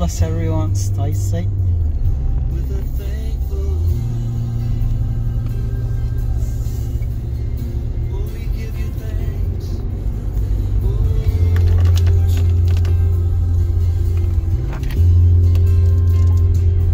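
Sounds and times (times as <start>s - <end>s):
car cabin rumble: 0.0s - 16.9s
music playing: 0.0s - 16.9s.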